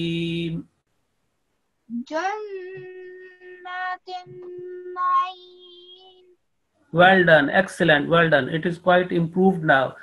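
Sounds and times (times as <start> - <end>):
person chanting recitation: 0.0 - 0.6, 2.1 - 6.3.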